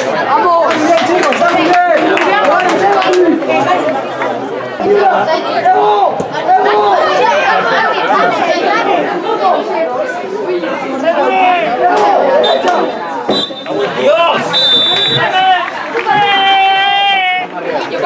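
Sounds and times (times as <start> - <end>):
crowd chattering and shouting: 0.0 - 18.0
high whistle notes: 13.3 - 13.8, 14.5 - 15.3.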